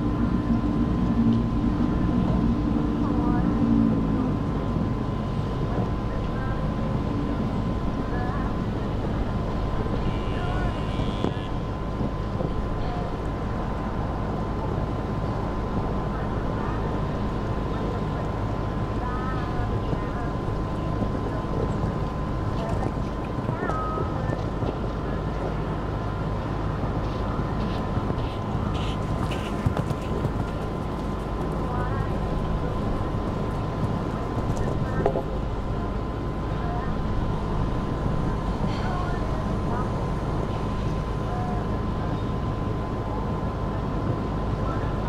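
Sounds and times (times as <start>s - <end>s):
constant thin high tone: 0.0s - 45.0s
wind rumble on microphone: 0.0s - 45.0s
faint distant voices: 12.4s - 45.0s.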